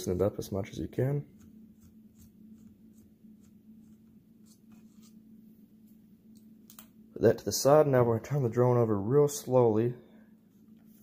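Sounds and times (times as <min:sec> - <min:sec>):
low steady hum: 0:00.0 - 0:11.0
screwdriver scratching and ticking: 0:01.3 - 0:05.1.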